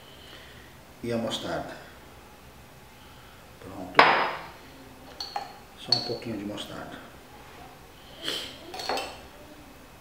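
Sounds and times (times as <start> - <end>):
metal spoon clinks: 5.1 - 6.3, 8.8 - 9.2.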